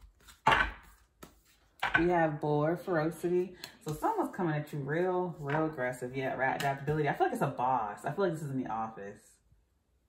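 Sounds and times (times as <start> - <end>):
card swishing: 0.0 - 1.7.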